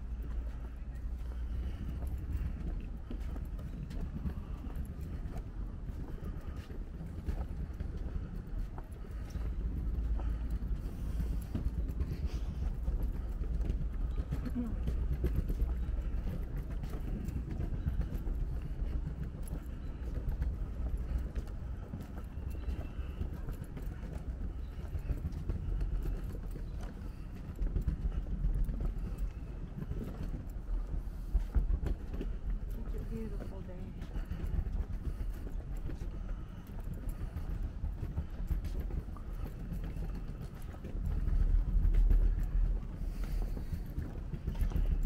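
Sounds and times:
footsteps on wooden boardwalk: 0:00.0 - 0:45.0
low rumble: 0:00.0 - 0:45.0
wind buffeting microphone: 0:00.0 - 0:45.0.

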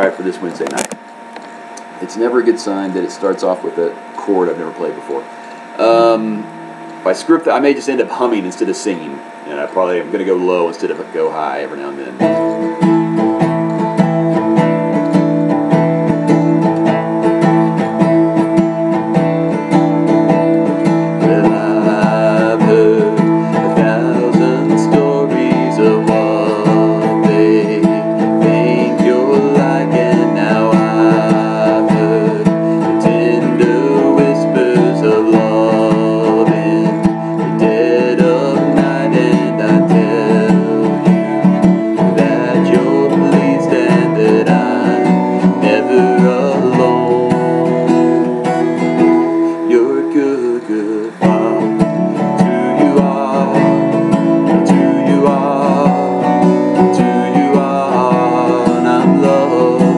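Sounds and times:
man humming: 0:00.0 - 0:14.0, 0:15.4 - 0:59.9
acoustic guitar strummed in chords: 0:00.0 - 0:59.9.

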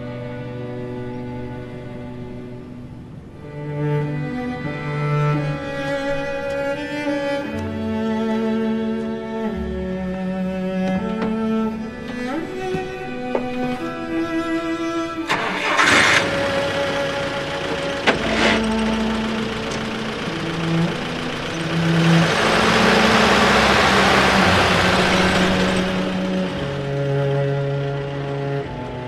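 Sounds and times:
orchestral string music: 0:00.0 - 0:29.0
jeep engine starting and running: 0:08.4 - 0:29.0.

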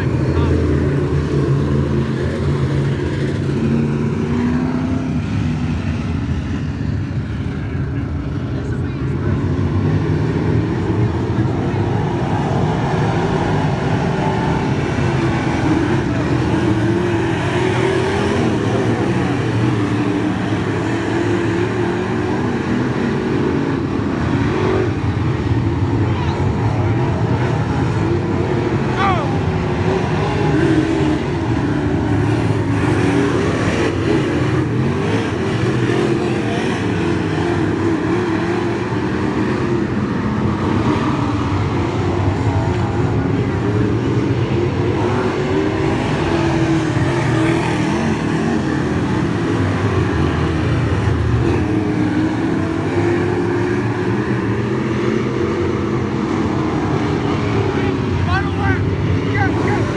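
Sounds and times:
race car engines droning: 0:00.0 - 0:59.9.

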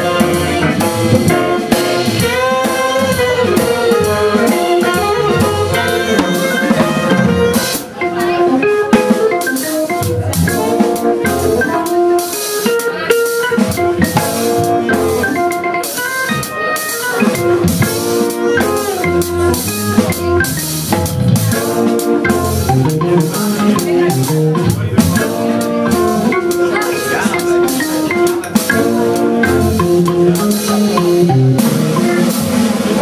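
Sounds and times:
tenor saxophone: 0:00.0 - 0:32.6
drum kit beat: 0:00.0 - 0:33.0
trombone: 0:00.0 - 0:33.0.

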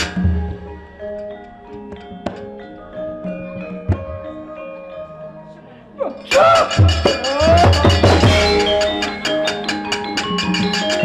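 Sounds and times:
gamelan playing softly: 0:00.0 - 0:11.0.

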